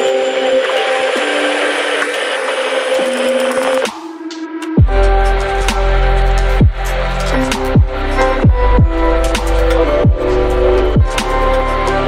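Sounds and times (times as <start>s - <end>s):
held synth notes: 0.0s - 12.0s.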